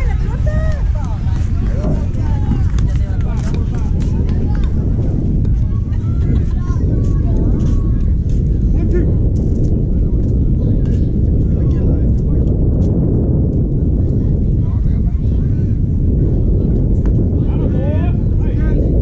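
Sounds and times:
distant voices and shouts: 0.0s - 12.5s
wind buffeting microphone: 0.0s - 19.0s.

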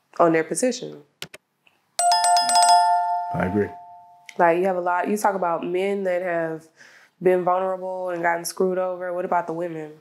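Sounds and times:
notification bell chime: 2.0s - 4.3s.

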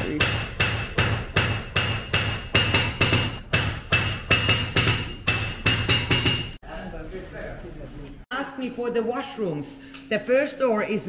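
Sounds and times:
hammer striking metal on anvil: 0.0s - 6.6s.

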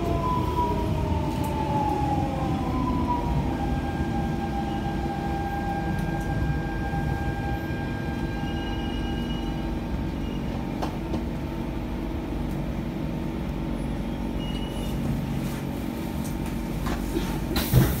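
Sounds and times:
train motors humming: 0.0s - 14.4s.

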